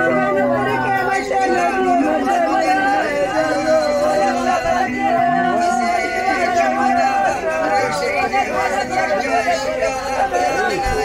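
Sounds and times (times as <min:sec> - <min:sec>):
women wailing in mourning: 0:00.0 - 0:11.0.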